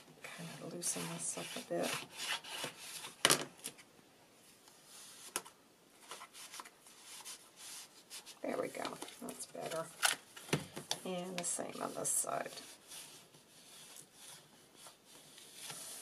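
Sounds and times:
paper rustling by hand: 0:04.8 - 0:16.0.

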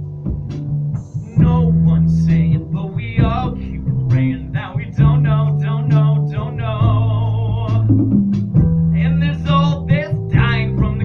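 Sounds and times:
deep sustained bass notes: 0:00.0 - 0:11.0
man singing with vibrato: 0:01.2 - 0:08.0, 0:09.0 - 0:11.0.

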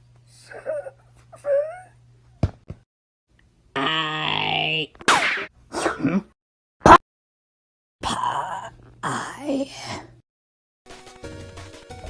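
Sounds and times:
person groaning: 0:03.8 - 0:04.9, 0:08.0 - 0:10.1.

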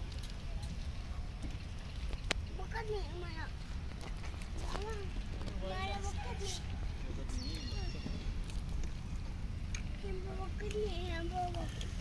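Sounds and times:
steady low rumble: 0:07.8 - 0:12.0
people talking: 0:10.0 - 0:11.8.

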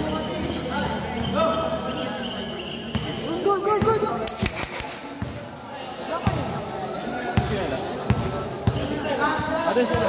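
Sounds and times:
basketball bouncing on court floor: 0:02.9 - 0:04.1, 0:07.4 - 0:09.0.

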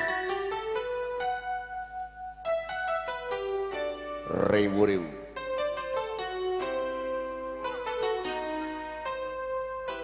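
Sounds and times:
electronic keyboard melody: 0:00.0 - 0:10.0.

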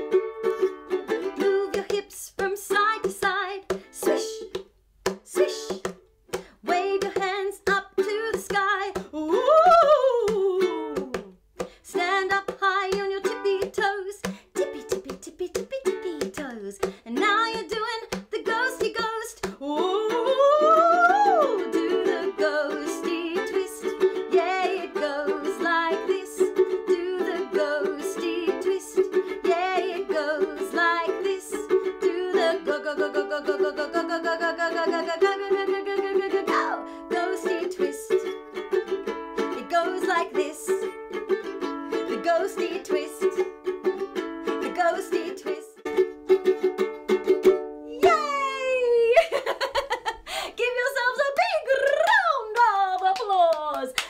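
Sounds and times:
fast-strummed ukulele: 0:00.0 - 0:48.6.

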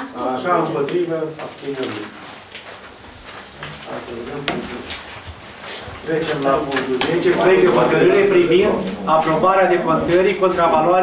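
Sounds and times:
paper shuffling on a table: 0:00.3 - 0:08.2.

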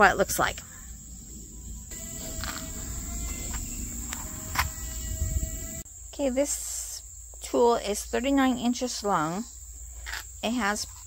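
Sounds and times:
high-pitched insect trill: 0:00.0 - 0:11.0
low rumble on microphone: 0:00.5 - 0:05.8.

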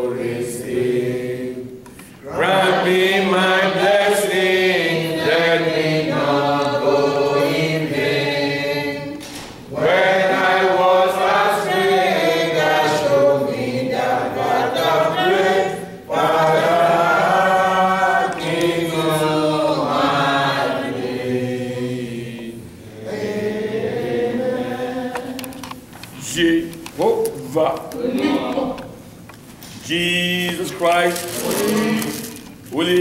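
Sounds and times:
congregation singing a hymn: 0:00.0 - 0:26.6, 0:29.8 - 0:33.0.

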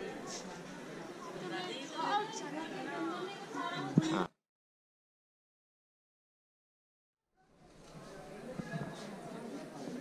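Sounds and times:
indistinct chatter: 0:00.0 - 0:04.4, 0:07.4 - 0:10.0.

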